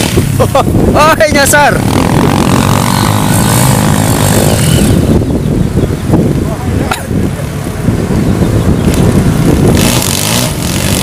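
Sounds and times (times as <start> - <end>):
motorcycle engines under throttle: 0.0 - 11.0.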